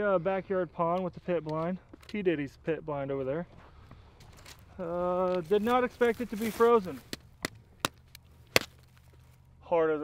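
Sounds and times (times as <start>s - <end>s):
stick knocking on ice: 5.3s - 9.0s.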